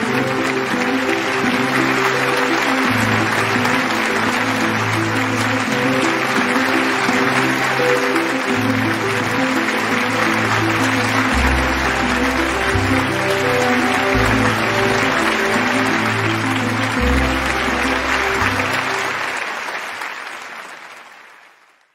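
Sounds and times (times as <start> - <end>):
audience applauding: 0.0 - 21.9.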